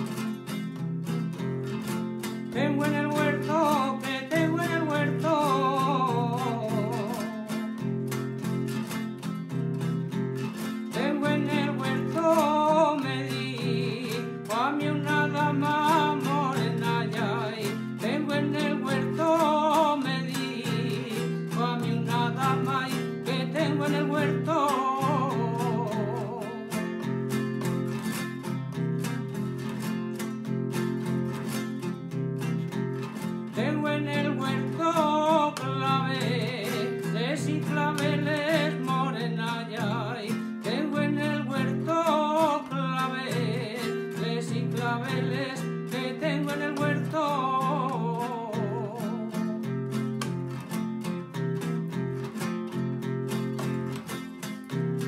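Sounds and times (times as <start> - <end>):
strummed acoustic guitar: 0.0 - 55.0
man singing: 2.2 - 8.2, 10.4 - 28.1, 33.0 - 50.7.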